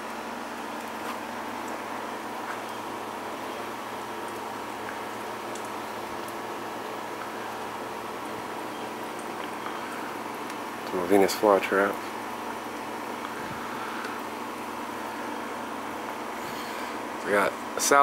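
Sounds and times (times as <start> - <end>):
water trickling in a tube: 0.0 - 17.9.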